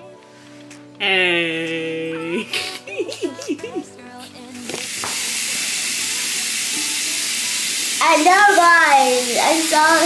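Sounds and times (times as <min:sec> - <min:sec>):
steady hiss: 0:04.7 - 0:10.0.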